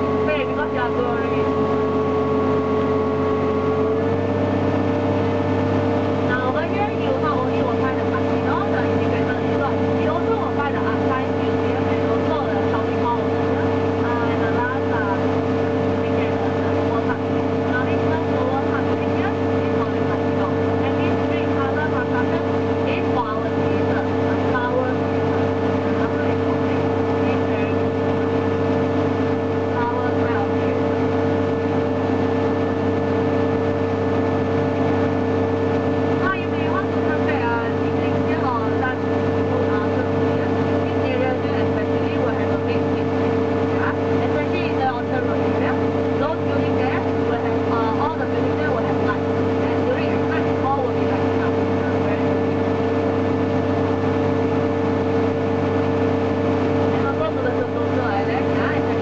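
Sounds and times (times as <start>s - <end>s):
boat engine droning: 0.0s - 59.0s.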